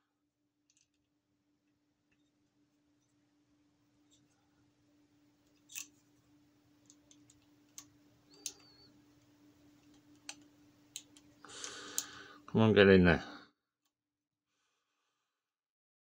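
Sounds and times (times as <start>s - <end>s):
small metal parts clicking: 5.4s - 6.0s.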